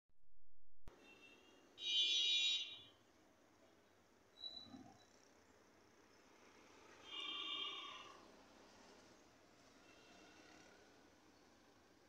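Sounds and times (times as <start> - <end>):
faint background noise: 0.9 - 12.0.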